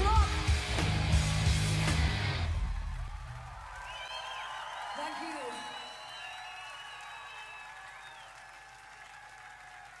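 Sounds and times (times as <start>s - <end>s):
crowd applauding and cheering: 0.5s - 10.0s
whistles and voices: 3.8s - 8.4s.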